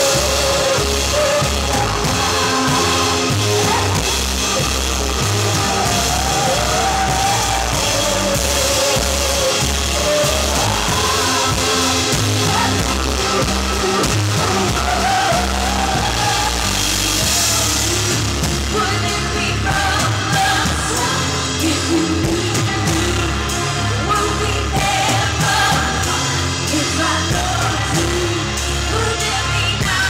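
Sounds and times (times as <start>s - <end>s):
bass guitar: 0.0s - 30.0s
drum kit: 0.0s - 30.0s.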